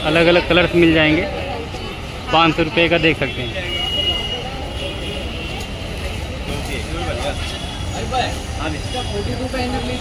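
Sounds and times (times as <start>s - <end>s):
indistinct customer chatter: 0.0s - 10.0s.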